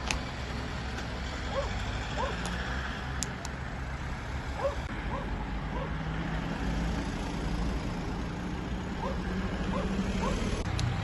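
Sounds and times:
low traffic rumble: 0.0s - 11.0s
vehicle engine hum: 0.0s - 11.0s.

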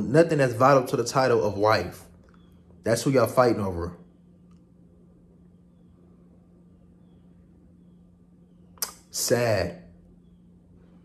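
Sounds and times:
steady low hum: 0.0s - 11.0s
lip smack: 8.8s - 9.1s.

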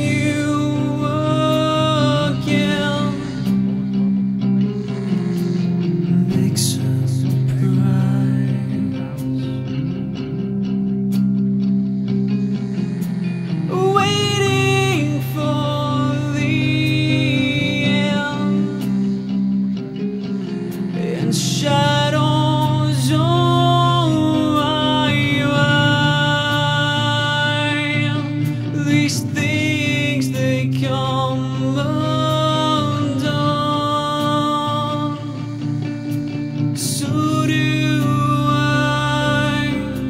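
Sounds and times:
guitars and bass: 0.0s - 40.0s
person singing: 0.0s - 40.0s.

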